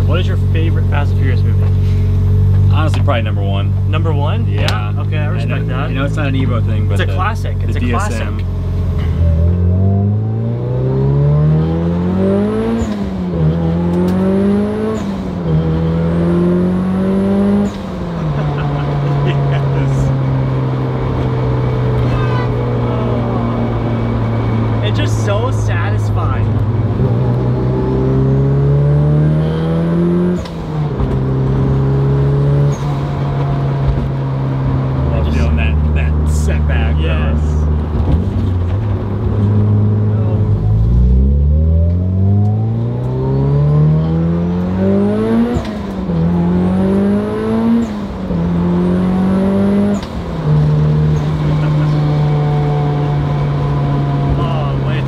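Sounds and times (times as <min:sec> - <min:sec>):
car engine accelerating hard: 0:00.0 - 0:55.0.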